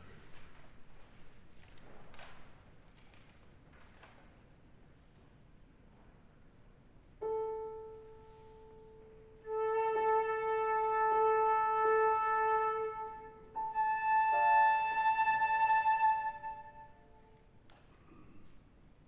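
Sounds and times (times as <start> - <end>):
flute holding a note: 7.2 - 17.3
piano notes: 7.2 - 17.4.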